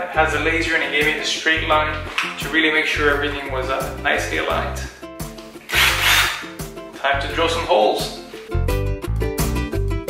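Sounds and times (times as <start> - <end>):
background music: 0.0 - 10.0
power drill running: 5.7 - 6.5.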